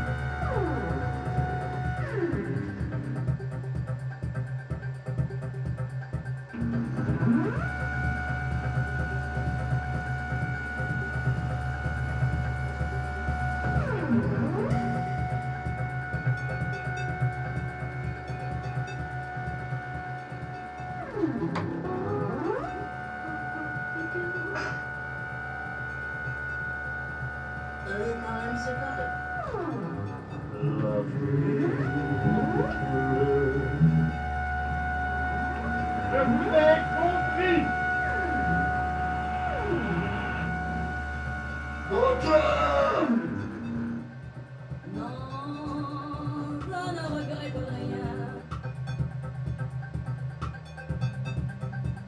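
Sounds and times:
steady low drone: 0.0 - 52.0
sliding synthesized tones: 6.5 - 48.6.

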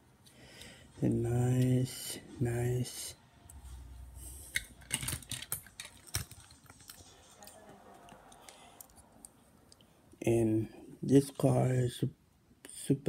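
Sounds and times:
toy car handling clicks: 4.5 - 6.9.

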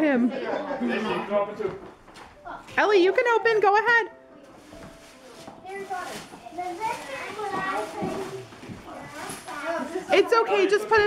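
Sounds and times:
wrapping paper rustling: 4.4 - 11.0
children chattering: 5.6 - 11.0.

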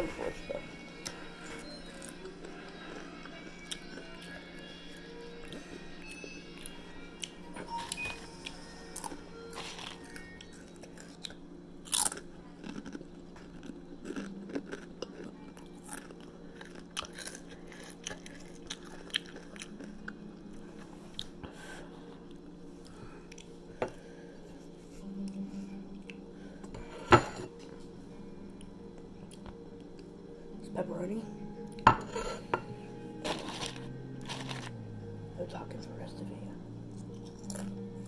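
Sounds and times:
steady low hum: 0.0 - 38.0
crunchy chewing of chips: 1.0 - 25.4, 33.2 - 35.0, 36.9 - 37.8.

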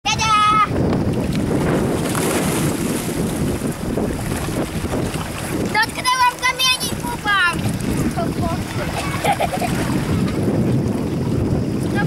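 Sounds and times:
wind rumbling on microphone: 0.0 - 12.0
children's high voices: 0.1 - 0.7, 5.7 - 7.6, 8.2 - 9.6.

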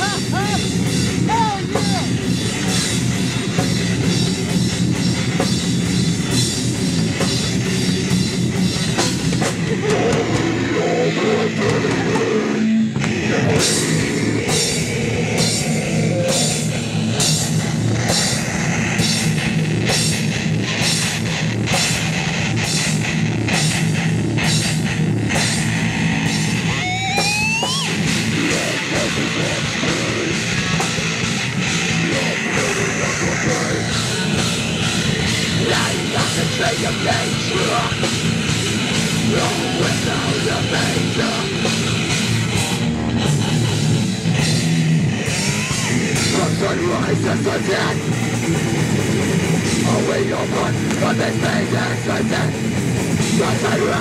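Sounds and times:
fast drumming: 0.0 - 12.4, 13.0 - 54.0
bass guitar: 0.0 - 54.0
distorted electric guitars: 0.0 - 54.0.

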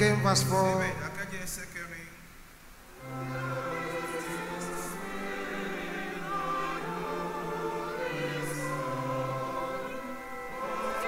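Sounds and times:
congregation singing a hymn: 3.0 - 11.0.

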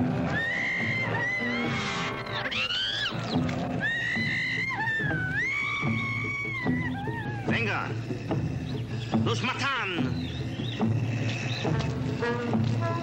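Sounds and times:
wailing high tones: 0.3 - 3.2, 3.8 - 7.8.

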